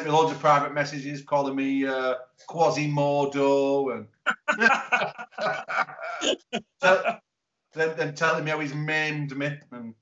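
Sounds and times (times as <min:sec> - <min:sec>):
men laughing: 0:04.4 - 0:07.1.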